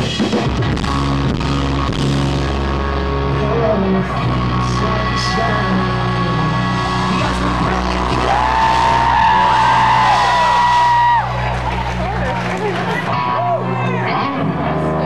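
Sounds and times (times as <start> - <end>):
rock band holding a chord: 0.0 - 15.0
crowd yelling and cheering: 0.1 - 15.0.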